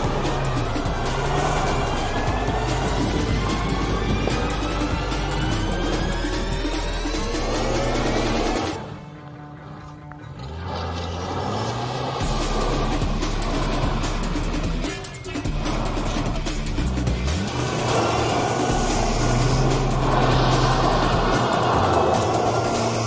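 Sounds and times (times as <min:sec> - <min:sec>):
car engine revving: 0:00.0 - 0:23.0
music playing: 0:00.0 - 0:23.0
tyres sliding on gravel: 0:06.5 - 0:23.0.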